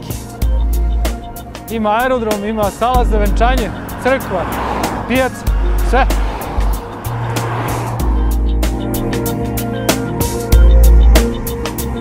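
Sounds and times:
sustained bass notes: 0.0 - 11.4.

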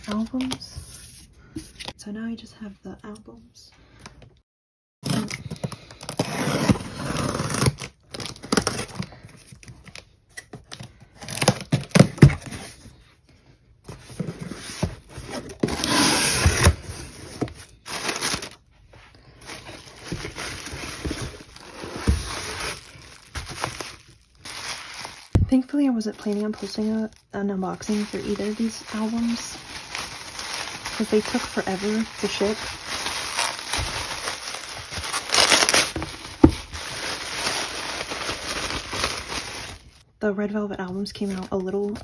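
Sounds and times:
cardboard scraping and rustling: 13.9 - 18.6, 19.4 - 25.4
bubble wrap rustling: 13.9 - 25.4, 26.1 - 40.0
packing tape being slit and torn: 32.4 - 36.5.

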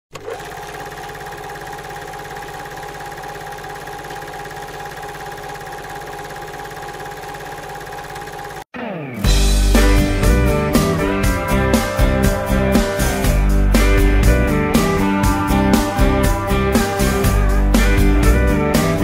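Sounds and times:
loud music: 8.7 - 19.0.

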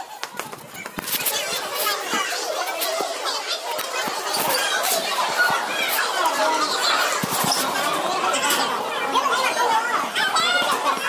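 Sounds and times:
babble of overlapping voices: 0.0 - 11.0.

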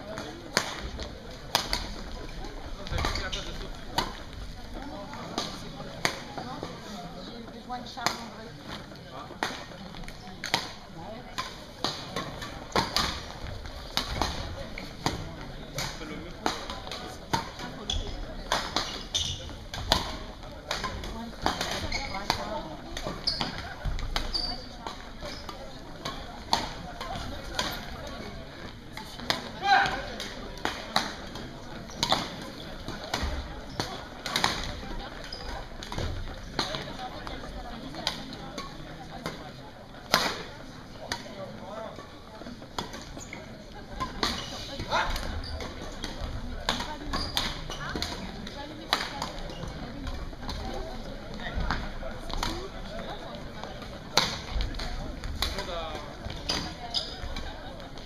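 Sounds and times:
murmur of voices: 0.0 - 58.0
rackets hitting shuttlecocks: 0.1 - 4.4, 10.3 - 37.4, 53.7 - 57.3.

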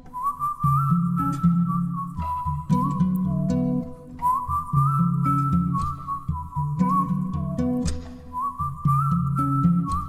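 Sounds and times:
guitar: 0.0 - 10.0.

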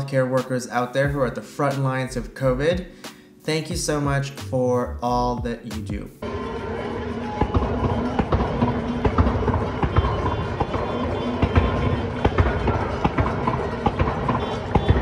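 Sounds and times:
music playing: 0.0 - 15.0
bangs: 6.2 - 15.0
crowd clapping and cheering: 6.2 - 15.0.

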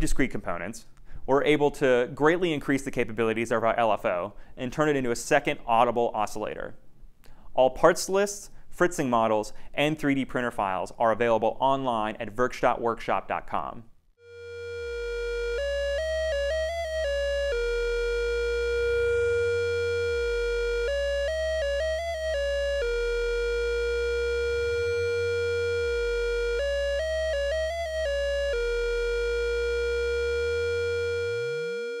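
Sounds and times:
rising synth sweep: 14.2 - 32.0
synthesizer music: 14.2 - 32.0
low bass drone: 14.3 - 32.0.

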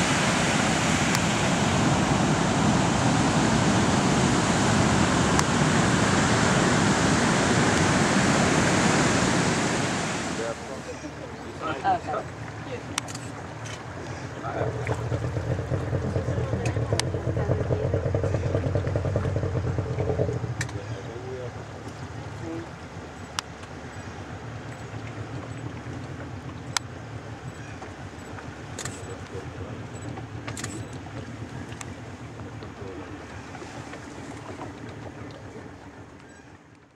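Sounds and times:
boat engine running: 0.0 - 36.9.

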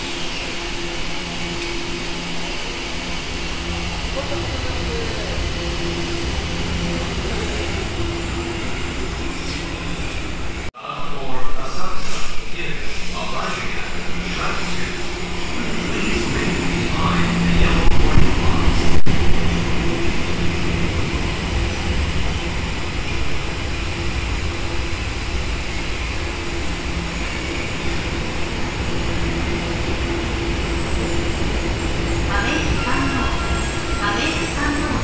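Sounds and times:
train motor hum: 0.0 - 10.7
subway train wheel rumble: 0.0 - 35.0.

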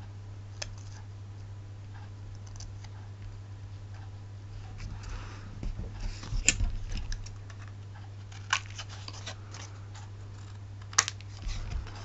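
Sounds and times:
steady low hum: 0.0 - 12.0
paper rustling and crackling: 8.3 - 12.0.

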